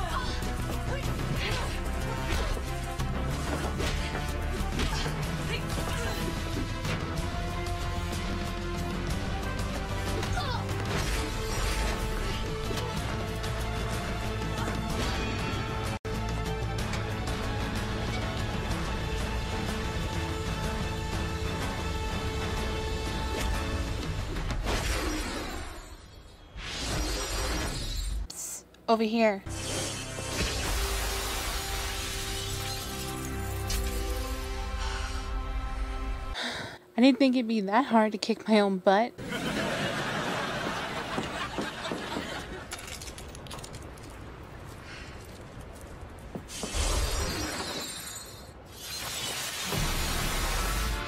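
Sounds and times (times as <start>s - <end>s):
music: 0.0s - 24.9s, 29.4s - 36.5s, 49.7s - 51.0s
glassy crackling shatter: 29.6s - 34.5s, 42.7s - 44.2s, 46.5s - 50.8s.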